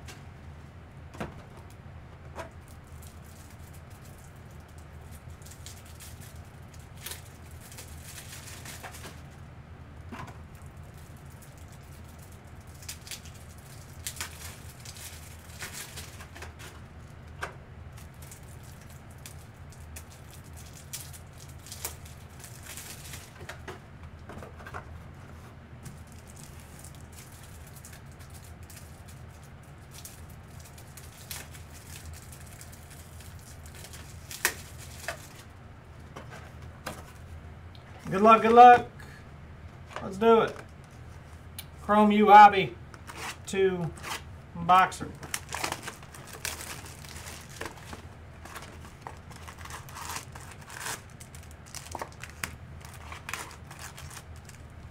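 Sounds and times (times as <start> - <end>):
steady low hum: 0.0 - 54.9.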